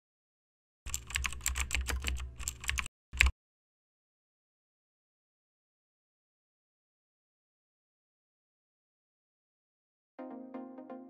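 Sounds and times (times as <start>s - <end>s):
typing on computer keyboard: 0.9s - 3.3s.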